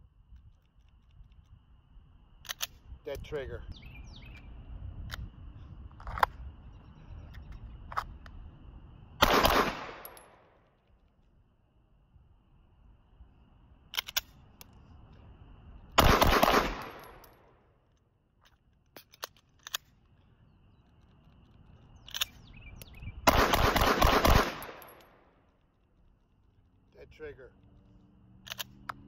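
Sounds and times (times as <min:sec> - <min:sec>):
pistol shots with echo: 0:09.2 - 0:10.5, 0:16.0 - 0:17.5, 0:23.3 - 0:25.2.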